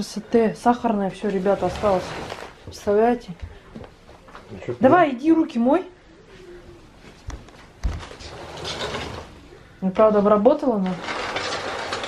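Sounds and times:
soft rustling: 1.0 - 4.6.

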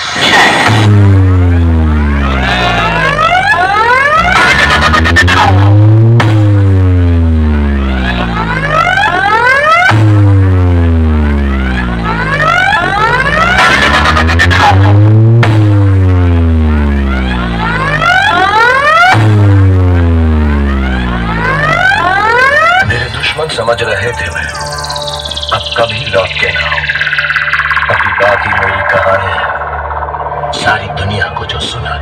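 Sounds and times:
deep sliding bass tone: 0.0 - 32.0
sweeping tones: 20.0 - 32.0.

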